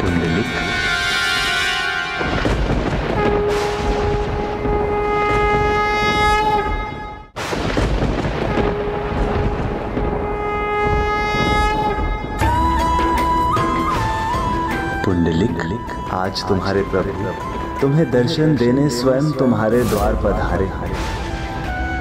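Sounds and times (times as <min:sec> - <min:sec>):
long horn blasts: 0:00.0 - 0:07.3, 0:08.4 - 0:14.6
flute melody: 0:08.6 - 0:22.0.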